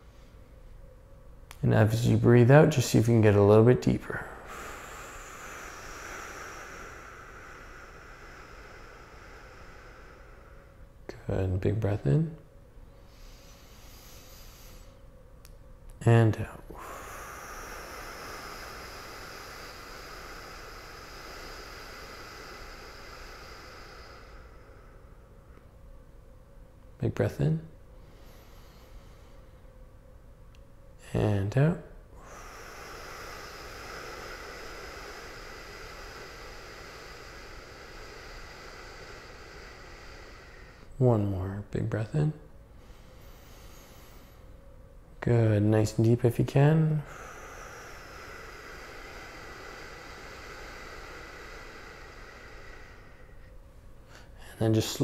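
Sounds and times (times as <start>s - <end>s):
person breathing in deeply: 0.0s - 0.5s, 3.0s - 11.8s, 12.5s - 15.1s, 16.5s - 25.8s, 27.6s - 29.7s, 32.0s - 41.4s, 42.3s - 45.0s, 45.8s - 55.0s.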